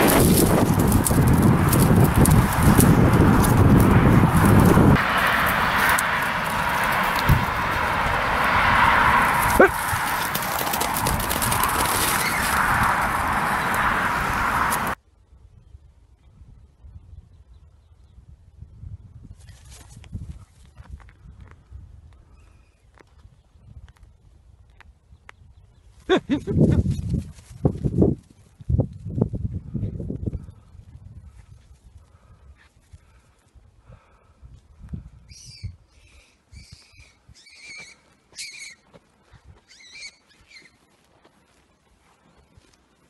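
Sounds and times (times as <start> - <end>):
animal struggle in grass: 0.0 - 8.4, 9.1 - 15.0
wind on microphone: 0.0 - 37.4
high-pitched animal squeals: 37.4 - 38.8, 39.7 - 40.7.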